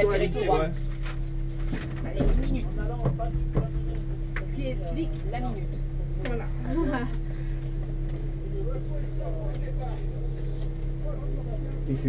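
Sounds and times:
car engine idling: 0.0s - 12.0s
faint voices: 2.0s - 12.0s.

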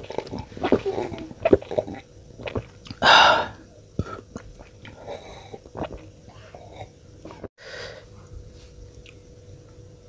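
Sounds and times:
man gulping drink: 0.0s - 7.5s.

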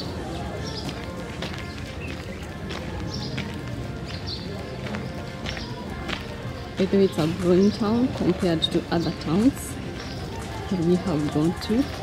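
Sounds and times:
footsteps on dirt street: 0.0s - 12.0s
steady background noise: 0.0s - 12.0s.

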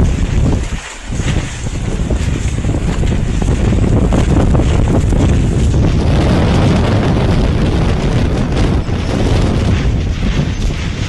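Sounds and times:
strong wind buffeting microphone: 0.0s - 11.0s.

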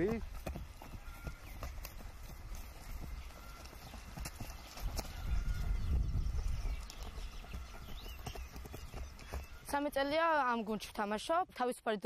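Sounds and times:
footsteps running on grass: 0.0s - 11.6s.

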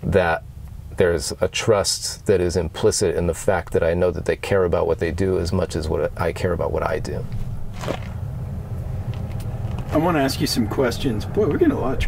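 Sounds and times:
vehicle engine rumble driving by: 3.0s - 12.0s.

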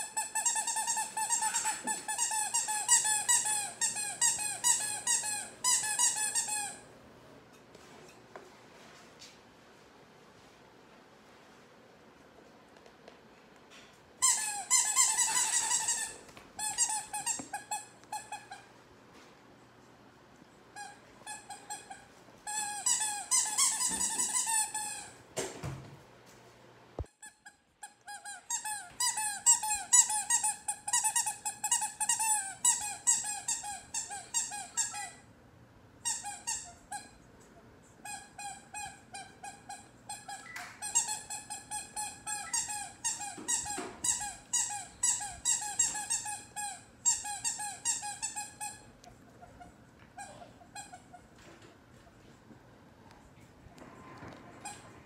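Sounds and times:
squeaky dog toy squeaking: 0.0s - 6.9s, 14.2s - 18.7s, 20.8s - 25.2s, 27.1s - 35.3s, 36.0s - 37.2s, 38.0s - 51.4s.

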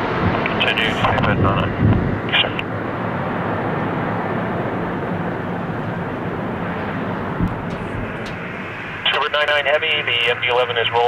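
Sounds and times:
jet landing roll rush: 0.0s - 11.0s.

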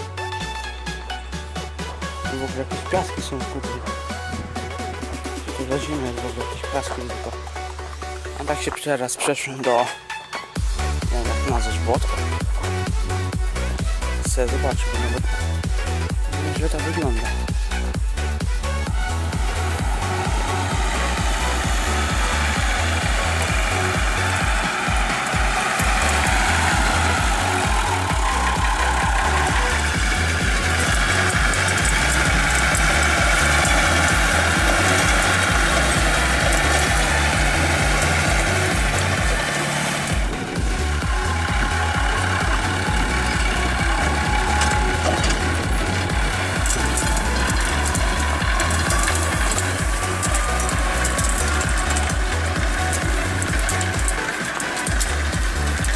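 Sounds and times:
electronic dance music: 0.0s - 55.9s.

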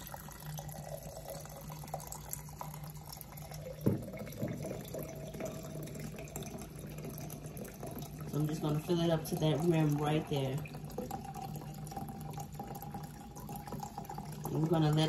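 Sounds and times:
liquid pouring into a glass jar: 0.0s - 15.0s.

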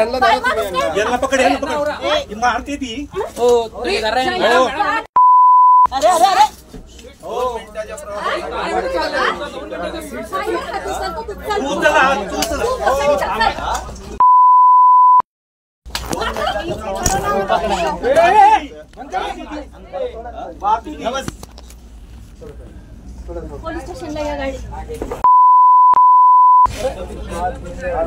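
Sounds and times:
high-pitched censor bleep: 5.2s - 5.9s, 14.2s - 15.2s, 25.2s - 26.7s
heated speech: 5.9s - 14.2s, 16.1s - 21.4s.

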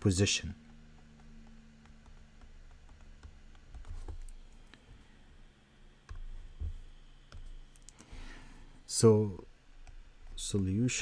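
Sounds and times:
faint computer clicks and taps: 0.4s - 5.1s, 6.0s - 8.2s, 9.8s - 10.7s.

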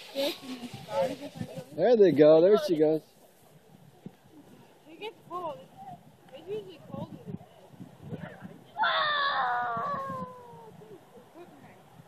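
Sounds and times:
child's high-pitched squeal: 8.8s - 10.8s.

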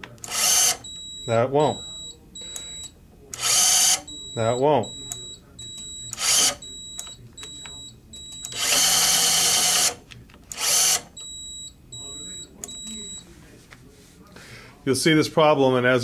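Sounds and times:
electric screwdriver running: 0.2s - 0.8s, 3.4s - 4.0s, 6.2s - 6.6s, 8.6s - 11.1s.

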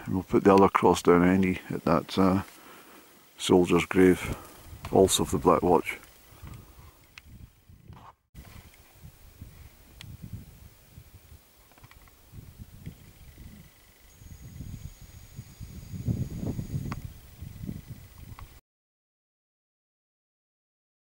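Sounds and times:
wind buffeting microphone: 4.2s - 18.6s.

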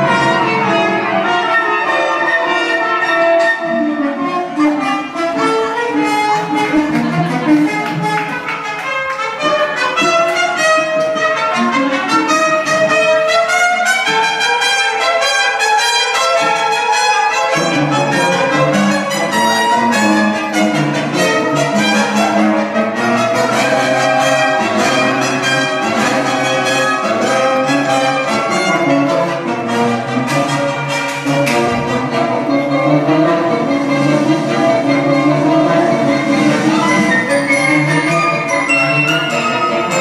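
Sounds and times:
orchestral strings and brass: 0.0s - 40.0s.

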